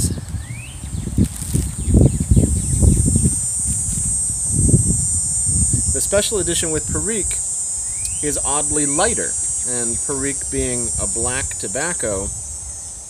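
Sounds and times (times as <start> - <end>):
high insect buzz: 0.0 - 13.0
wind buffeting microphone: 0.0 - 13.0.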